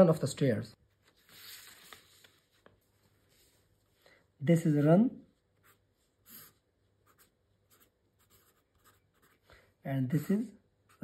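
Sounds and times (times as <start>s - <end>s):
marker pen scratching on paper: 5.6s - 9.5s.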